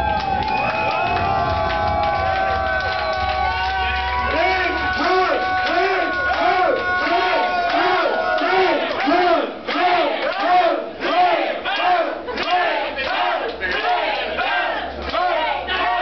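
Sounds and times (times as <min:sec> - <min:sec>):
crowd shouting along: 0:00.0 - 0:16.0
loud hardcore techno: 0:00.1 - 0:09.6.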